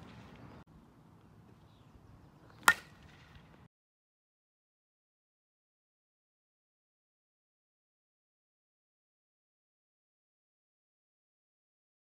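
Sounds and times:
bat striking softball: 2.6 - 3.6.

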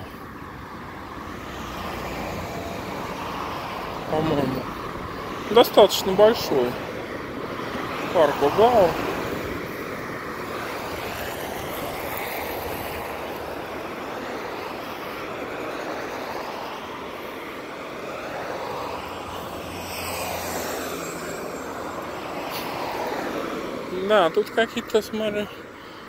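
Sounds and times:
cars passing: 0.0 - 26.0.

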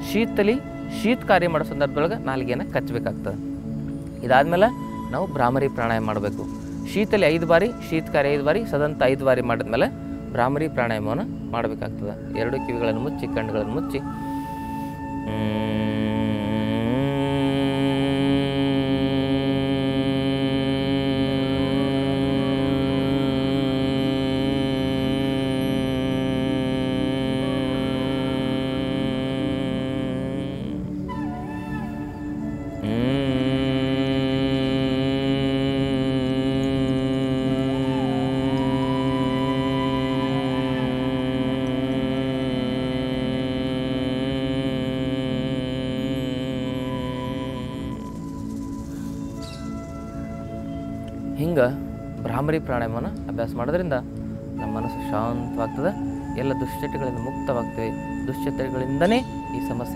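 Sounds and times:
man humming steady tone: 0.0 - 59.9.

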